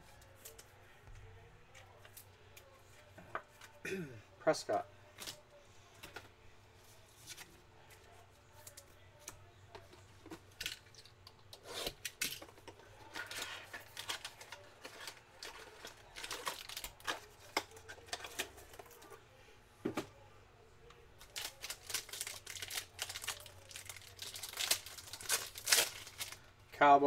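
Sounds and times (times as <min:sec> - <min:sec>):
cards and wrappers rustling: 0:04.7 - 0:19.2, 0:21.2 - 0:26.5
foil pack tearing: 0:21.2 - 0:26.4.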